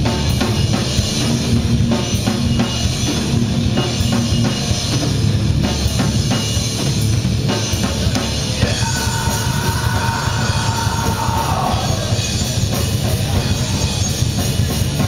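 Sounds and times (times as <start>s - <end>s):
rock band playing live: 0.0s - 15.0s.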